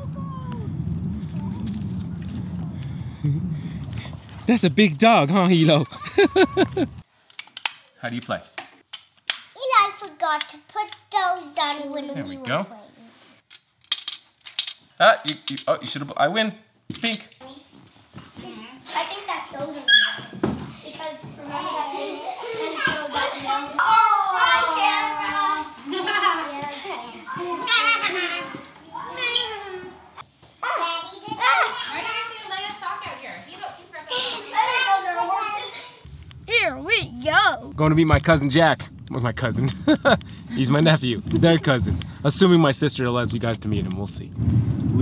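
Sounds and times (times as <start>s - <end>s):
children calling out: 5.8s - 7.0s, 18.8s - 32.5s.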